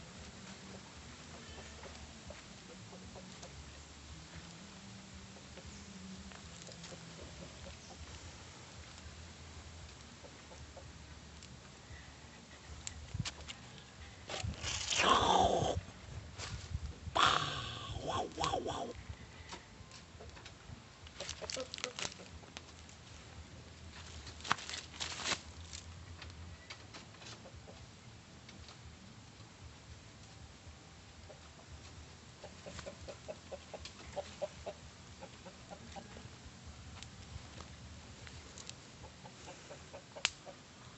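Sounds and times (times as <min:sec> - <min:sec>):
chicken clucking: 0:17.2 - 0:19.6, 0:32.4 - 0:36.3, 0:39.0 - 0:40.6.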